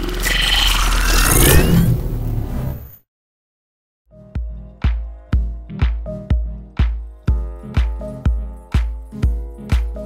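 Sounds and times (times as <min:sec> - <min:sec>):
rushing engine-like noise: 0:00.0 - 0:02.9
music: 0:04.1 - 0:10.0.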